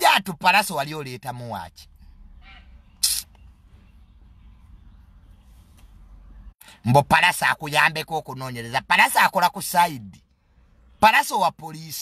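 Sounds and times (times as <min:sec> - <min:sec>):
short sharp hiss: 0:03.0 - 0:03.4.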